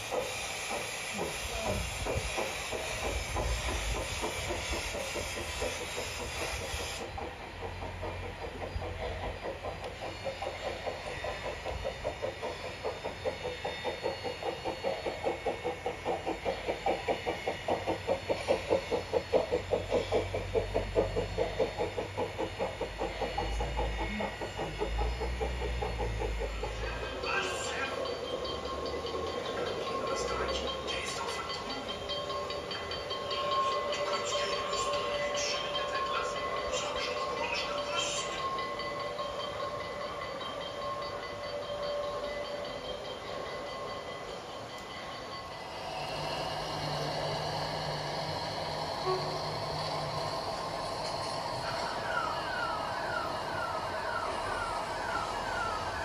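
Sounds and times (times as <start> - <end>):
model steam locomotive chuffing: 0.0 - 56.0
rail clicks: 0.0 - 56.0.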